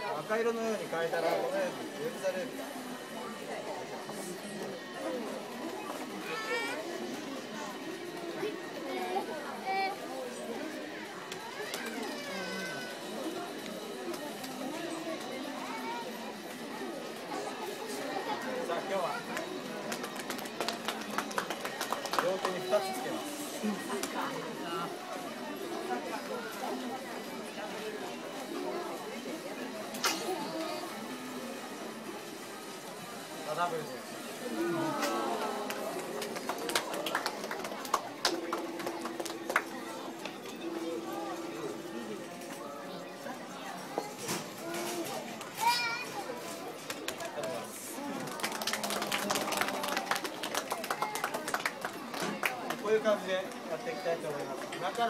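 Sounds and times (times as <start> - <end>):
voices chattering: 0.0 - 55.0.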